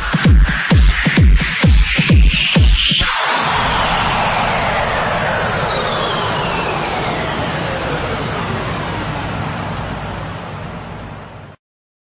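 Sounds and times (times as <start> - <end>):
whooshing downward noise sweep: 2.8 - 11.6.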